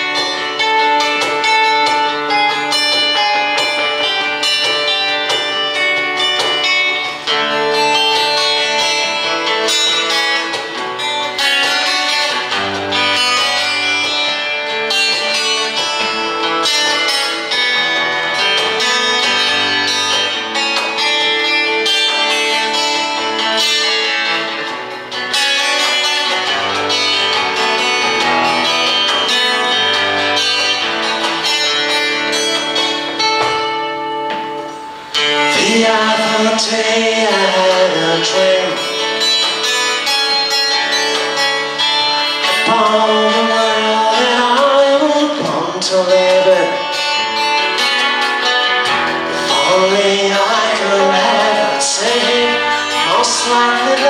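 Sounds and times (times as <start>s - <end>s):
acoustic guitars playing: 0.0s - 54.0s.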